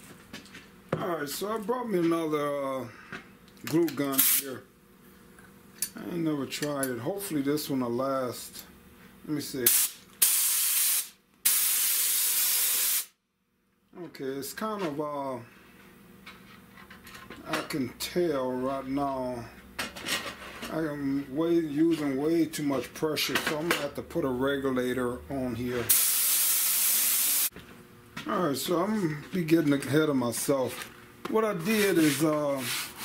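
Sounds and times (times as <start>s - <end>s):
spray gun spraying bursts: 4.2s - 4.4s, 9.7s - 13.1s, 25.9s - 27.5s.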